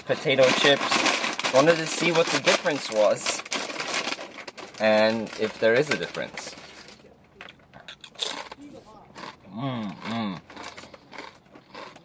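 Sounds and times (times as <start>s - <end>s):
chip bag crinkling: 0.0s - 7.1s, 7.9s - 9.4s, 10.0s - 12.0s
chips crunching: 0.0s - 12.0s.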